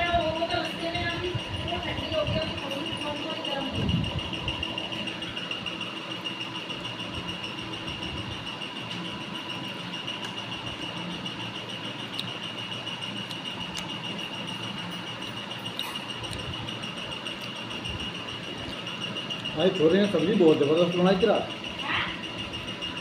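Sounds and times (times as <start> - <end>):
faint hum: 0.0 - 23.0
high-pitched whine: 0.0 - 23.0.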